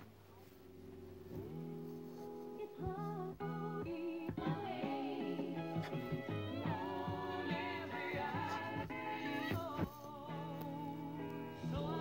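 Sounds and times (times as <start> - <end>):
held chords from vinyl record: 0.0 - 12.0
person singing: 2.6 - 12.0.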